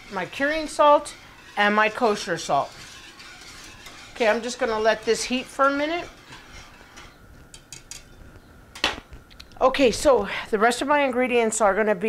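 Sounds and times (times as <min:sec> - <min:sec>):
whisk ticking against pot: 0:00.0 - 0:08.1
wire whisk stirring liquid: 0:00.0 - 0:08.2.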